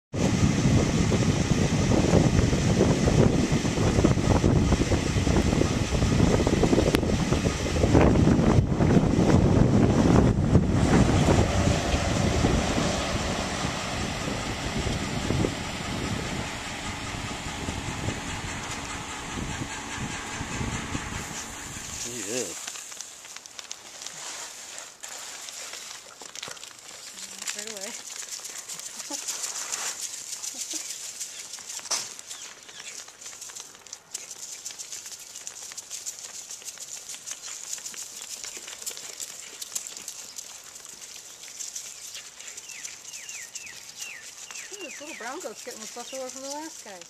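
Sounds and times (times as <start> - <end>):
wind gusts hitting microphone: 0.1 - 22.1
car road noise: 10.0 - 19.1.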